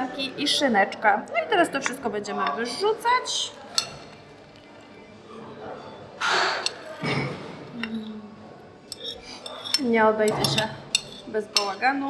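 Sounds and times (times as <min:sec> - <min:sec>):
metal spoon scraping ceramic plate: 0:06.3 - 0:07.9, 0:08.8 - 0:11.9.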